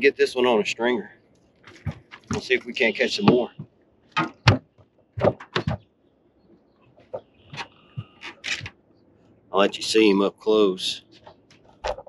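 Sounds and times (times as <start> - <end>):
sharp knocks in boat: 3.2 - 5.8.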